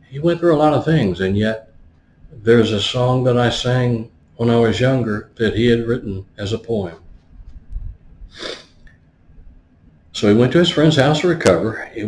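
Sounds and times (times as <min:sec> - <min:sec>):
man's sharp breath: 0:08.3 - 0:08.8.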